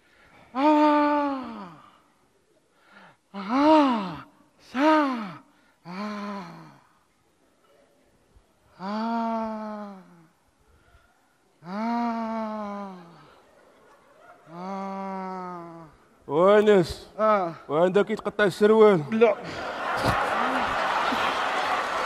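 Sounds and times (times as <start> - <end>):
man groaning: 0.6 - 1.9, 3.4 - 6.8, 11.6 - 13.2, 14.5 - 16.0.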